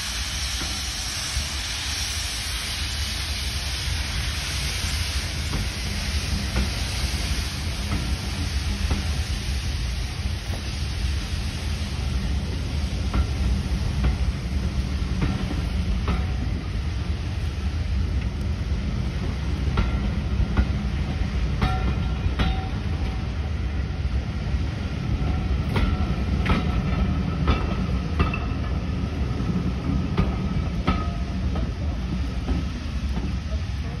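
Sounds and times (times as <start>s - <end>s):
train carriages rumbling past: 0.0s - 34.0s.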